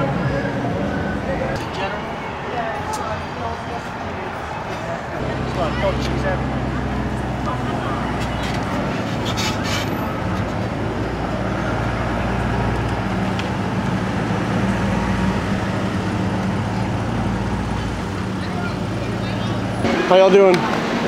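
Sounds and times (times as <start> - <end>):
street traffic: 0.0 - 21.0.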